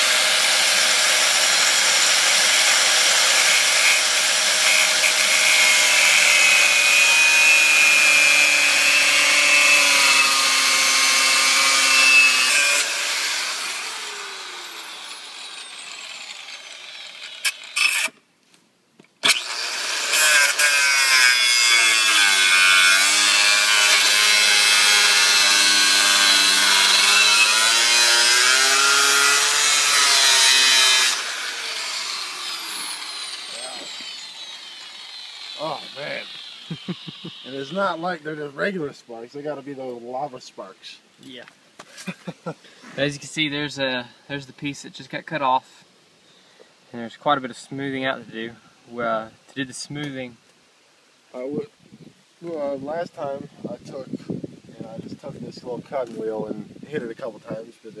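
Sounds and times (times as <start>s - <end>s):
angle grinder cutting steel: 0.0s - 18.2s, 19.2s - 38.1s.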